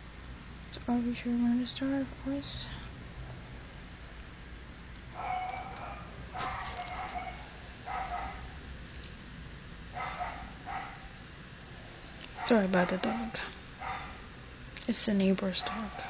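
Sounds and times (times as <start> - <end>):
dog barking: 5.1 - 8.5, 9.9 - 11.2, 12.4 - 14.3, 15.6 - 16.0.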